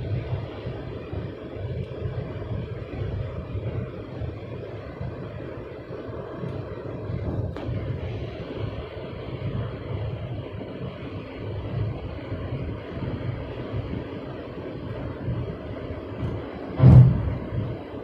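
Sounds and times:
road and wind roar in car: 0.0 - 18.0.

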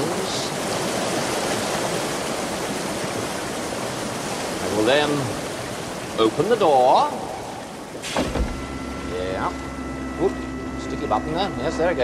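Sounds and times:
door mechanism humming and whining: 8.0 - 12.0.

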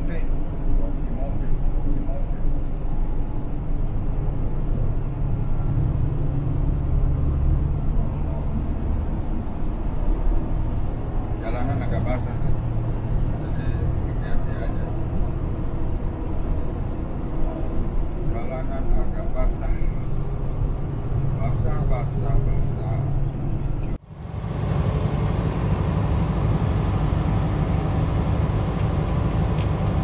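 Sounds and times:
tyres on highway: 0.0 - 30.0
truck engine droning: 23.0 - 30.0.

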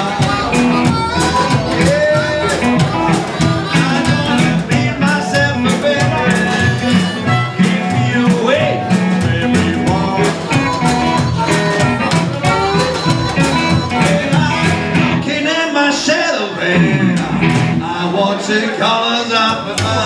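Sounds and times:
melodic lead line: 0.0 - 15.2
blues band playing: 0.0 - 20.0.

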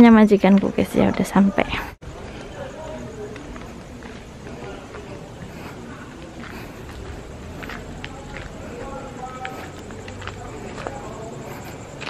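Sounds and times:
faint voices: 0.0 - 12.0
footsteps on pavement: 0.0 - 12.0.

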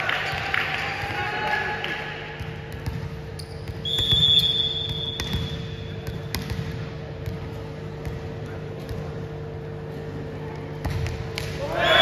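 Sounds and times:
low rumble of sports hall: 0.0 - 12.0
volleyball bouncing on court: 2.2 - 9.5, 10.5 - 11.8
referee's whistle: 3.4 - 5.9.

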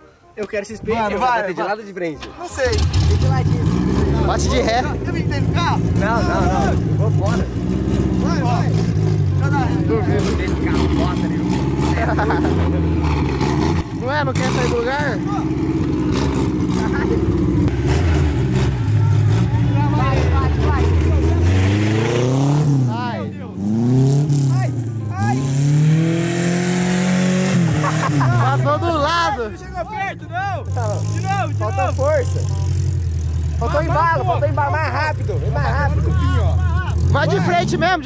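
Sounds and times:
car engine revving hard: 2.6 - 29.0.

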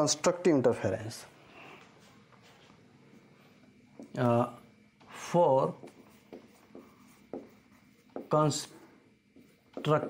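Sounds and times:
marker writing on whiteboard: 5.1 - 10.0.

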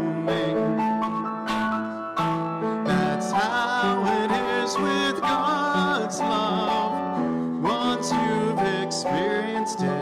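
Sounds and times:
grand piano accompaniment: 0.0 - 10.0
person singing a hymn: 0.0 - 10.0.

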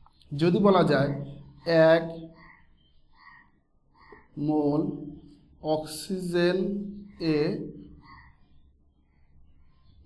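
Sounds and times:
marker squeaking on whiteboard: 0.0 - 10.0.

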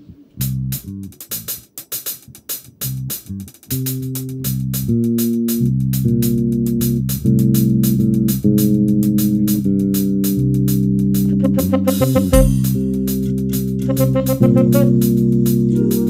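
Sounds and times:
electric bass: 0.0 - 1.6, 2.7 - 16.0
drum kit with cymbal beat: 0.0 - 16.0
keyboard chords: 11.2 - 16.0.

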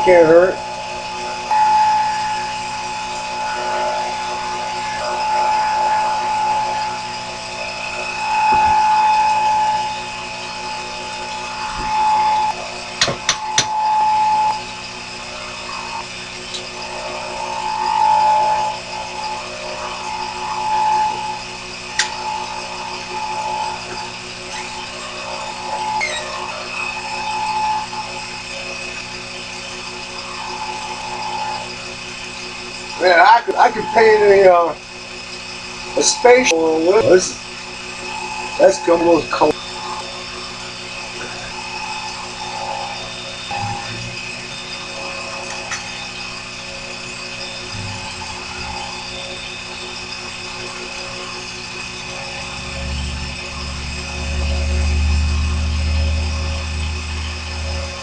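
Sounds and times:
bench lathe motor whine: 0.0 - 58.0.

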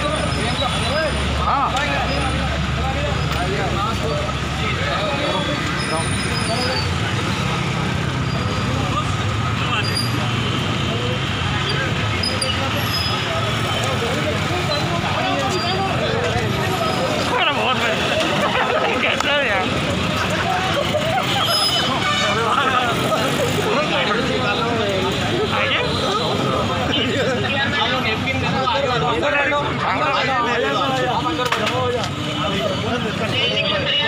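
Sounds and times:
people talking and calling out: 0.0 - 34.0
street traffic: 0.0 - 34.0.

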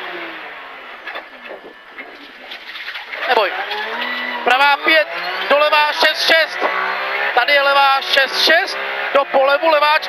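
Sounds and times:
car engine from inside cabin: 0.0 - 10.0.

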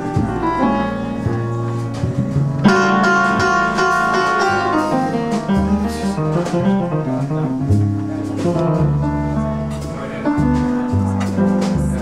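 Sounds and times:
piano chords: 0.0 - 12.0
plucked upright bass: 0.0 - 12.0.

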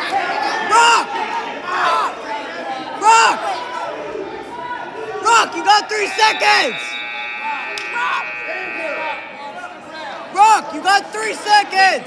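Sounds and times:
people yelling in a gymnasium: 0.0 - 12.0
steady high tone: 5.2 - 11.2.

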